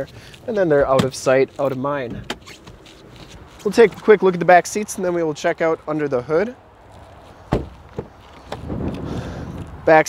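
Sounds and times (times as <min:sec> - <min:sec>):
soft rustling: 0:00.0 - 0:05.1, 0:06.8 - 0:09.8
car door shutting: 0:00.8 - 0:01.2, 0:07.5 - 0:09.0.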